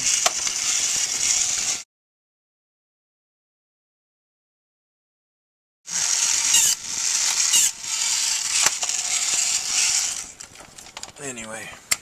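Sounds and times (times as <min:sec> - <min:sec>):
toy gear motor grinding: 0:00.0 - 0:01.8, 0:05.9 - 0:10.4
sharp mechanism clicks: 0:06.1 - 0:10.4.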